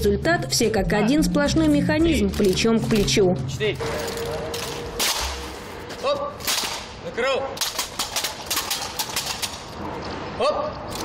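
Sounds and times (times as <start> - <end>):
rifles clacking into position: 2.3 - 3.2, 3.8 - 5.6, 6.4 - 7.0, 7.6 - 9.8.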